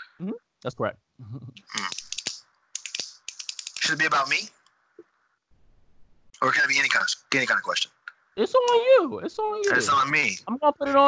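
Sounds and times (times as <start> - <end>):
keyboard typing: 1.6 - 4.4.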